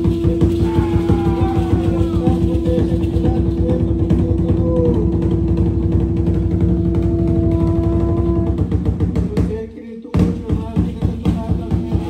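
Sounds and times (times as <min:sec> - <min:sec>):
fast dense drumming: 0:00.0 - 0:12.0
long held note: 0:00.2 - 0:08.8.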